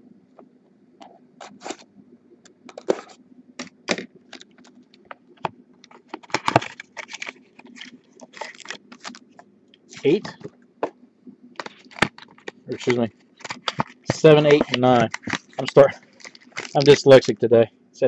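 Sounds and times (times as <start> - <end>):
foil packs crinkling: 5.8 - 9.4, 11.6 - 17.5.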